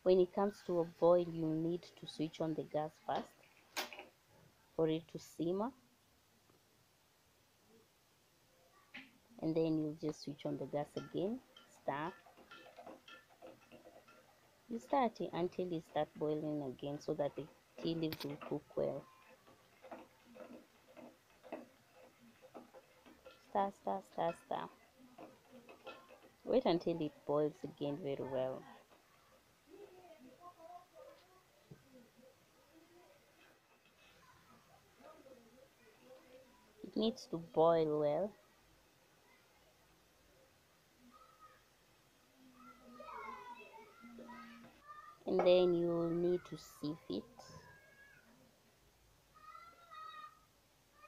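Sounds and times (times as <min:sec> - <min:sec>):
ladle ticking in metal pot: 0:10.1 - 0:28.2.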